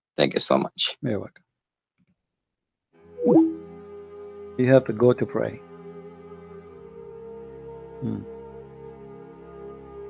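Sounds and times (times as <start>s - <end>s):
swooping sound effect: 3.2s - 3.6s.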